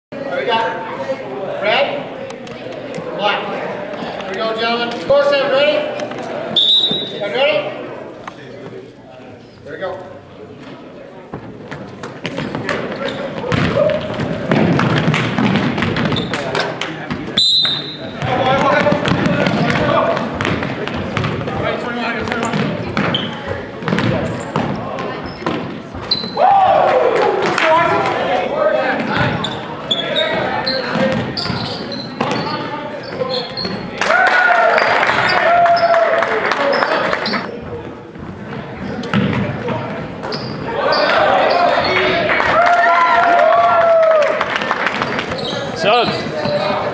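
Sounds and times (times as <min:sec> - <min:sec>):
basketball bouncing on hardwood: 0:13.4 - 0:16.4, 0:18.2 - 0:21.6, 0:22.2 - 0:25.7, 0:39.1 - 0:39.9.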